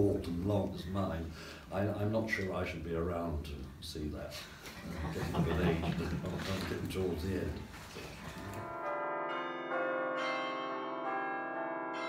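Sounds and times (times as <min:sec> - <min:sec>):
bell notes ringing: 0:08.5 - 0:12.0.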